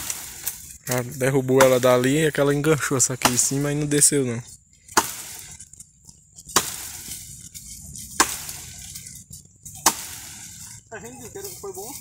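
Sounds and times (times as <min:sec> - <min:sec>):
chopping blows into wood: 0:08.2 - 0:08.6, 0:09.8 - 0:10.2.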